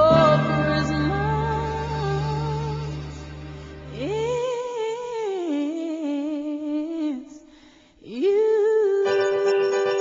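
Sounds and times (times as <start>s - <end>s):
woman singing slow pop vocal: 0.0s - 10.0s.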